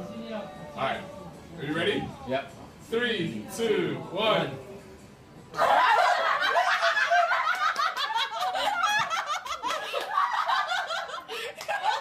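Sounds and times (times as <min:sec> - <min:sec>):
group of people laughing: 0:05.6 - 0:12.0.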